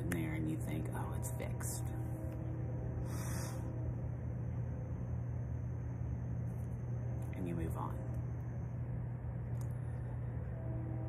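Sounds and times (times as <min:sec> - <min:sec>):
low rumbling hum: 0:00.0 - 0:11.0.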